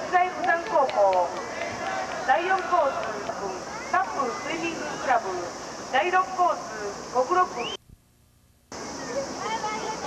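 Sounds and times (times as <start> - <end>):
people calling and talking: 0.0 - 7.8, 8.7 - 10.0
steady hiss: 0.0 - 10.0.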